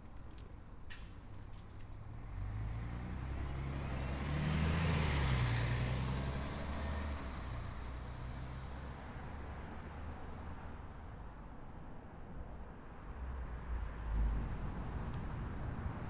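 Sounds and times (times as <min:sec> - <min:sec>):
road noise: 0:00.0 - 0:16.0
vehicle engine rumble: 0:12.6 - 0:16.0.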